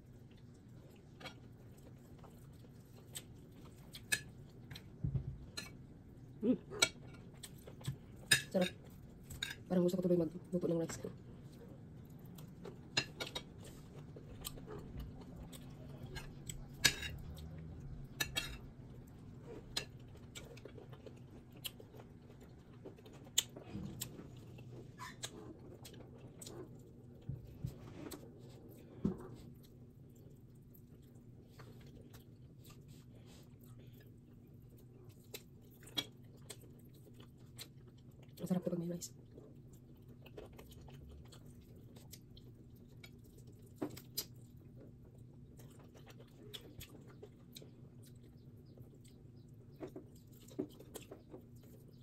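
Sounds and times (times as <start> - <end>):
low steady hum: 0.0 - 52.0
person chewing: 0.1 - 9.6, 11.4 - 27.3, 28.0 - 38.4, 39.2 - 52.0
cutlery clicking on plate: 16.2 - 17.2.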